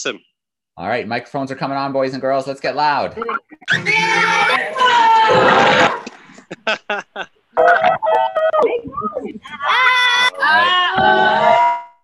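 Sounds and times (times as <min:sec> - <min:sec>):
children and teachers shouting: 0:03.7 - 0:06.0, 0:09.6 - 0:11.6
laughter: 0:05.7 - 0:07.3.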